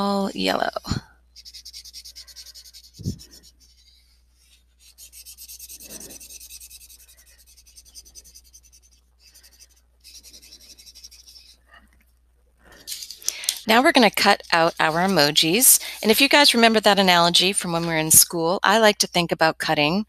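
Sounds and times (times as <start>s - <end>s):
marker scratching on paper: 0.4s - 11.7s, 12.8s - 18.2s.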